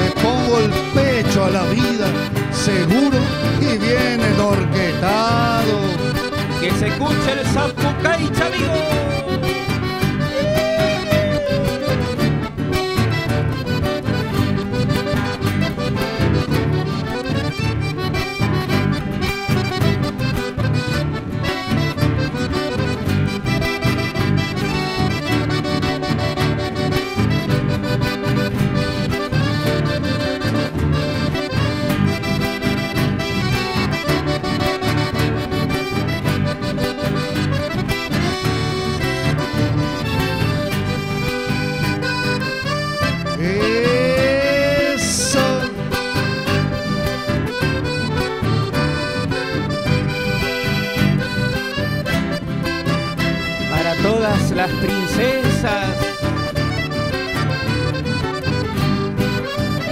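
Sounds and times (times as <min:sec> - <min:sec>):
accordion: 0:00.0 - 0:59.9
acoustic guitars: 0:00.0 - 0:59.9
bass guitar: 0:00.0 - 0:59.9
long high shout: 0:08.7 - 0:12.2.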